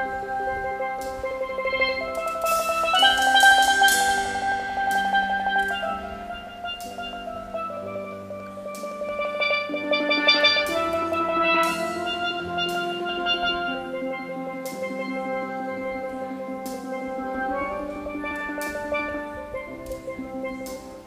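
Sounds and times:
sharp percussion hits: 0:00.0 - 0:21.0
steelpan rolled notes: 0:00.0 - 0:21.0.

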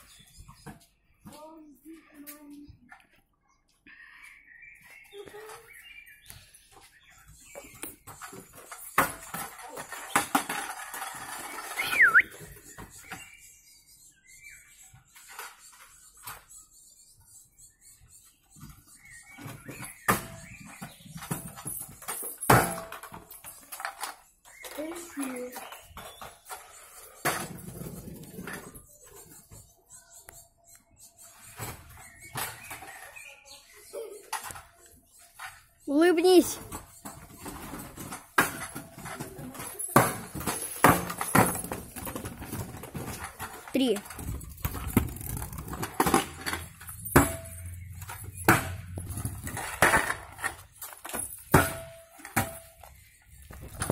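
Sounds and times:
scooter rattling over paving: 0:07.4 - 0:13.3, 0:19.4 - 0:29.1, 0:34.2 - 0:53.9
scooter landing knocks: 0:39.9 - 0:52.8.

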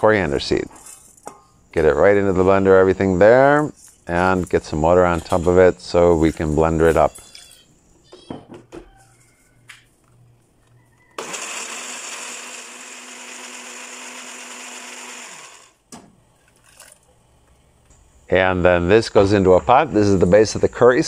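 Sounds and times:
blender motor running: 0:11.2 - 0:15.8.

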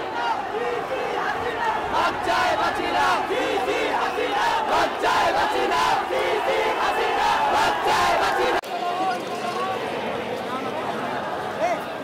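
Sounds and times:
large crowd shouting: 0:00.0 - 0:12.0.

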